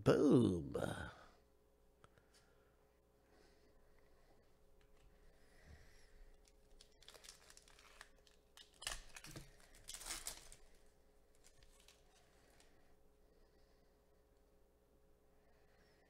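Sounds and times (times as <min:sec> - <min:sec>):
wrapper crinkling and tearing: 0:06.4 - 0:12.7.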